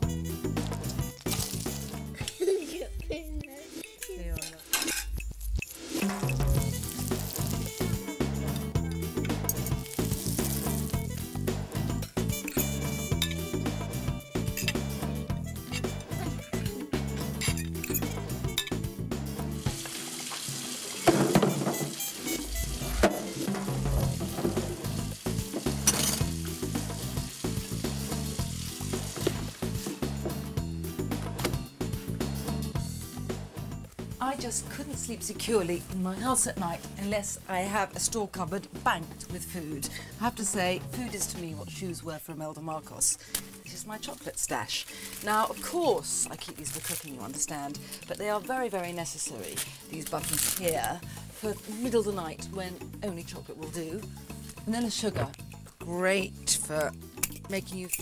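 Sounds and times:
background music: 0.0 - 58.0
fish cakes sizzling in a pan: 19.6 - 21.1, 24.2 - 29.8.

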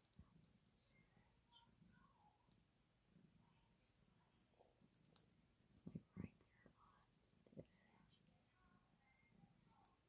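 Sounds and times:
faint whispering: 0.0 - 10.0.

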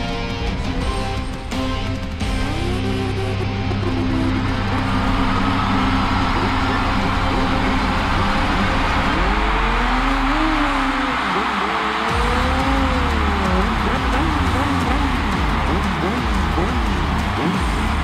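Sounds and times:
background music: 0.0 - 18.0
motorcycle engine revving: 2.2 - 18.0.

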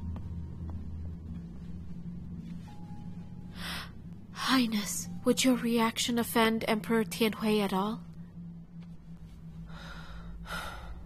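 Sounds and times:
low background music drone: 0.0 - 11.0
woman speaking: 4.4 - 8.1.

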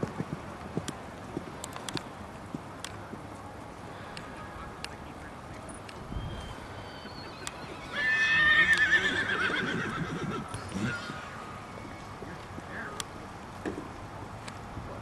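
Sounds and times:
horse whinnying: 6.8 - 11.4.

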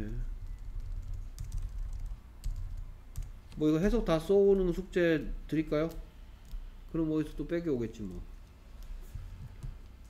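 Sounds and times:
low steady hum: 0.0 - 10.0
computer keyboard keystrokes: 0.4 - 3.7, 5.8 - 6.7.

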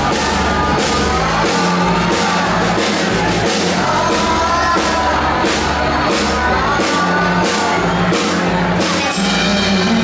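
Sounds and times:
bass line: 0.0 - 10.0
live band playing: 0.0 - 10.0.

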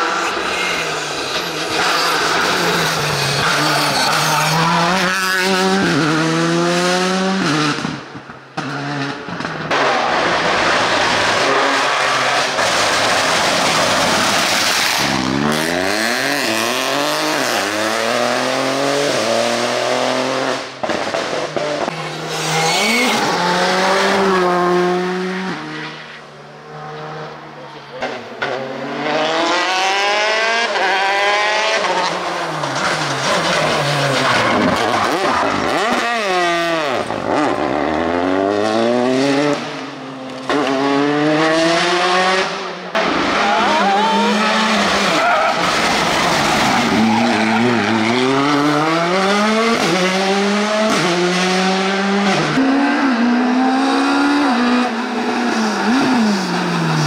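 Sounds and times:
rally cars at full throttle: 0.0 - 57.0.

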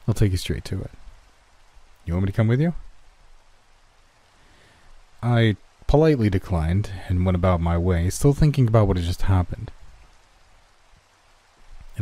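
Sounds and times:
rain hiss: 0.0 - 12.0.

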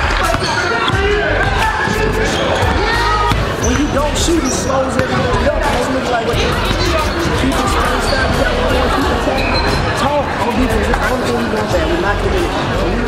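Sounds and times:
players calling out: 0.0 - 13.0
basketballs bouncing on wooden floor: 2.7 - 5.5.

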